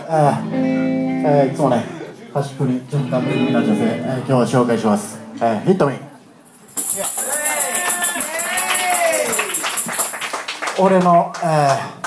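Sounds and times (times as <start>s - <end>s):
electric guitar chord ringing: 0.1s - 2.1s, 2.9s - 6.2s.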